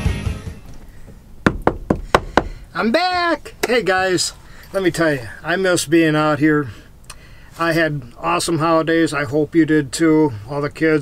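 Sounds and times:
sharp knocks: 0:01.4 - 0:02.6.

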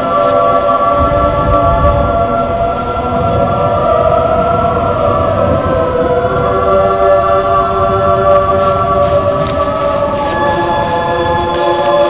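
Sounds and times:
choir-like chord music: 0:00.0 - 0:12.0
low rumble: 0:00.8 - 0:11.6.

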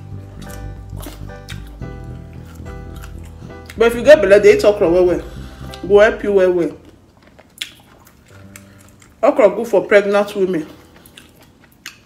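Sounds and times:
background music with light beat: 0:00.0 - 0:06.7.

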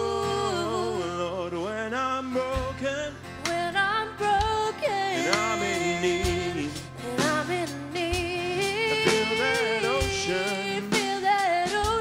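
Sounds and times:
worship song with instruments: 0:00.0 - 0:12.0.

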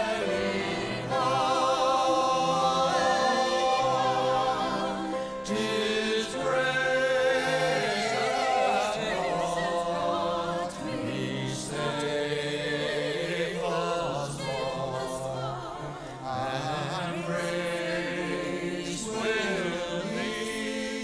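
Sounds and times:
church choir singing: 0:00.0 - 0:21.0.

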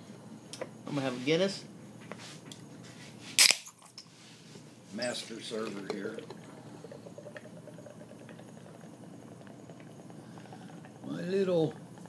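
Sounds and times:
beer pouring into a glass: 0:05.0 - 0:12.0.

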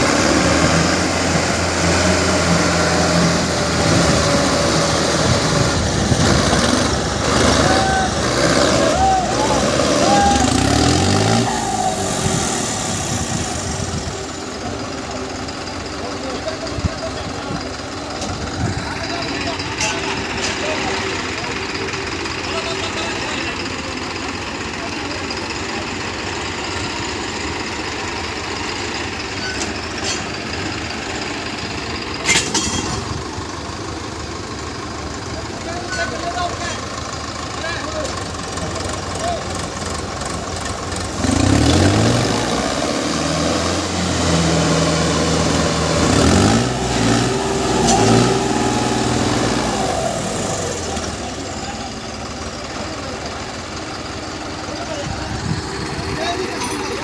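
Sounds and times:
diesel tractor engines idling: 0:00.0 - 0:57.0
tractor engine revving: 0:00.0 - 0:57.0.

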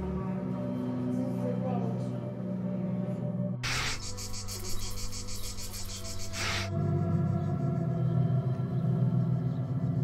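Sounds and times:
crickets chirping: 0:03.6 - 0:10.0.

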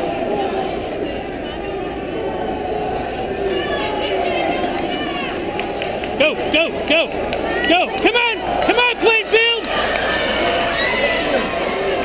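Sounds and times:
crowd talking: 0:00.0 - 0:12.0
raised voices: 0:00.0 - 0:12.0.

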